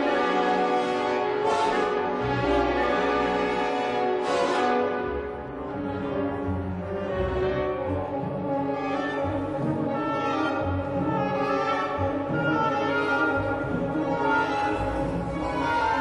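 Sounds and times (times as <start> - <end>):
orchestra playing classical music: 0.0 - 16.0.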